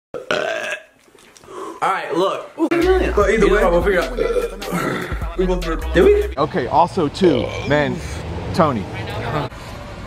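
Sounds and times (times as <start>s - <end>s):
man belching: 0.2s - 1.0s, 2.6s - 6.4s, 7.4s - 7.8s.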